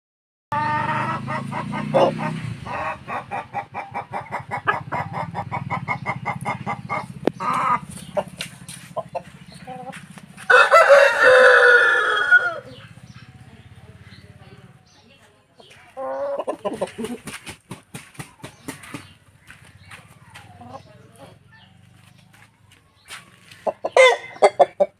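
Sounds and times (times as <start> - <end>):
rooster clucking: 0.5 - 13.6, 15.6 - 22.4, 23.4 - 24.9.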